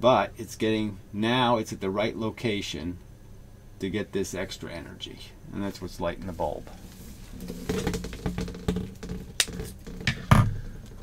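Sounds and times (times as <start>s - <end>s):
rustling: 5.7s - 11.0s.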